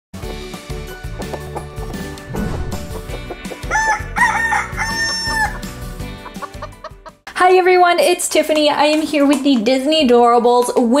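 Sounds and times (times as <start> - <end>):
short intro jingle: 2.3 - 3.5
rooster crowing: 3.6 - 5.7.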